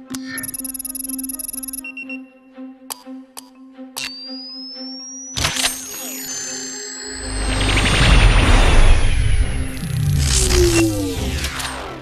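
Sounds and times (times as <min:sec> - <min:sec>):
film score music: 0:00.0 - 0:12.0
tones sliding downward: 0:04.0 - 0:12.0
high whine rising in pitch: 0:06.0 - 0:12.0
sharp electronic burst: 0:07.2 - 0:12.0.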